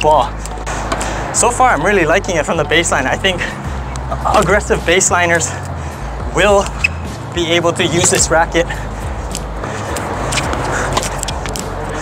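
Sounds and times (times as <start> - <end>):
tennis ball struck and bouncing: 10.3 - 11.7.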